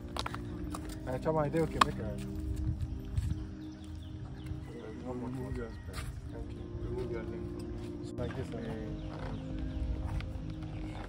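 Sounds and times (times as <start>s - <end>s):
horse hooves thudding: 0.0s - 6.3s
music with long held notes: 0.0s - 11.0s.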